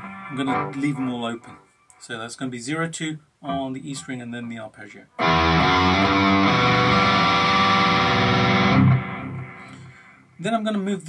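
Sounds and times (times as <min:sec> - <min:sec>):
distorted electric guitar: 0:00.0 - 0:01.0, 0:05.2 - 0:10.3.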